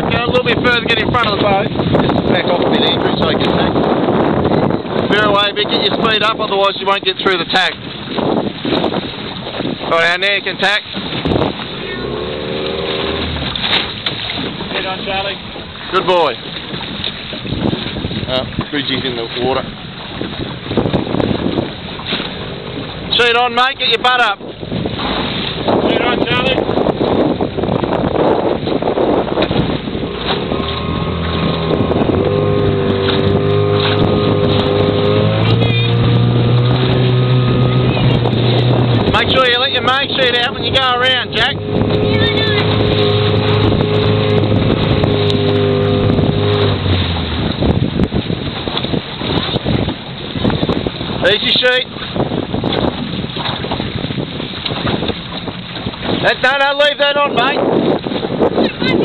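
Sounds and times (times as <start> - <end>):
outboard motor running: 0.0 - 59.0
water splashing: 0.0 - 59.0
wind buffeting microphone: 0.0 - 59.0.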